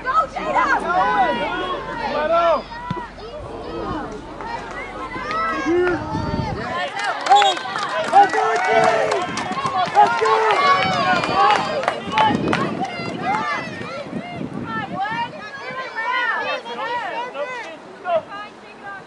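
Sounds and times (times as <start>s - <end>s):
voices shouting and calling out: 0.0s - 19.0s.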